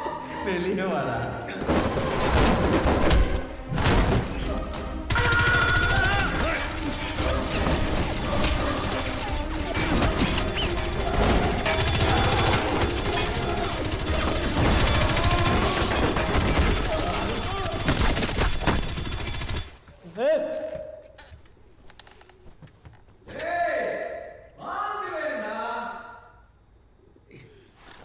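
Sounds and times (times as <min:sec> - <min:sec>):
action film music: 0:00.0 - 0:19.8
gunfire bursts: 0:05.1 - 0:19.8.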